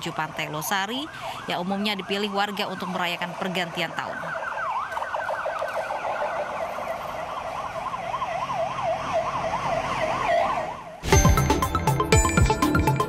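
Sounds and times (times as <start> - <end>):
police siren yelping: 0.0 - 11.0
electronic jingle with sharp hits: 11.0 - 13.0.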